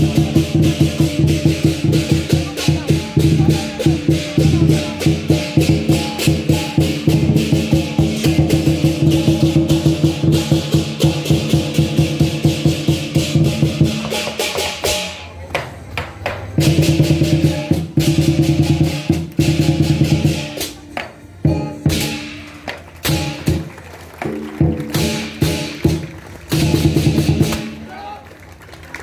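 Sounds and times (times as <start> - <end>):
cymbals clashing: 0.0 - 15.4, 16.5 - 23.7, 24.8 - 27.8
lion drum beating: 0.0 - 28.0.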